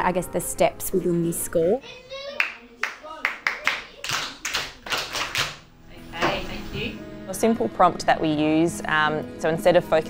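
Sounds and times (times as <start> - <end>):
people clapping rhythmically: 2.2 - 5.7.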